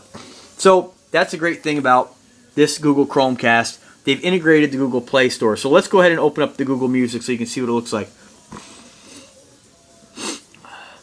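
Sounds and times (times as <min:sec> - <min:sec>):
person breathing close: 0:10.1 - 0:11.0.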